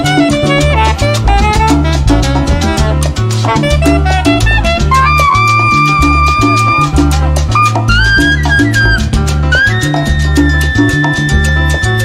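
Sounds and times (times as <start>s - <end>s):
high saxophone note: 0.0s - 7.0s
salsa band playing: 0.0s - 12.0s.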